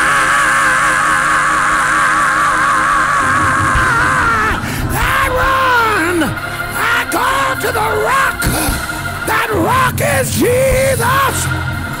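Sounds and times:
man singing with vibrato: 0.0 - 11.6
sustained instrumental chords: 0.0 - 12.0.

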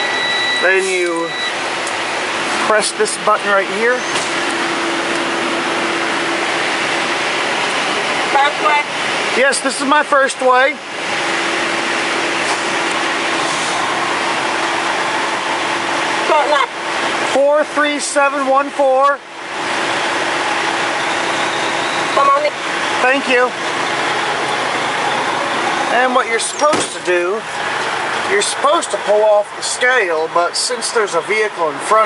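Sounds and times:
steady rushing noise in truck cab: 0.0 - 32.0.

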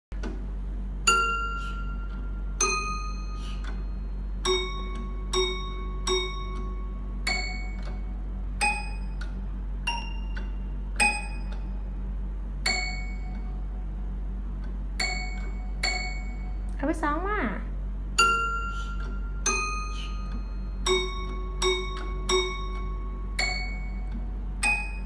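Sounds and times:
toy piano notes: 1.0 - 11.7, 12.6 - 13.6, 15.0 - 16.7, 18.2 - 25.0.

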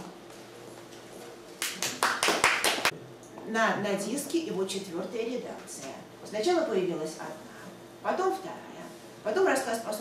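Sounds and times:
small audience applause: 1.6 - 2.9.

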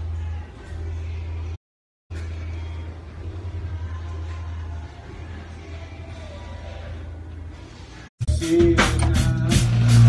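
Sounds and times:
muffled rock band: 8.3 - 10.0.

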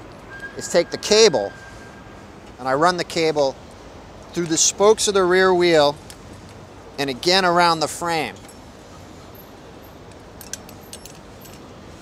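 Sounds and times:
cable lock clinking: 10.1 - 11.7.

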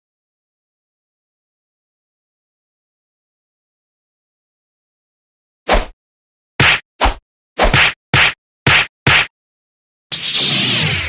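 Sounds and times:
short sharp whacks: 5.7 - 5.9, 6.6 - 9.3.

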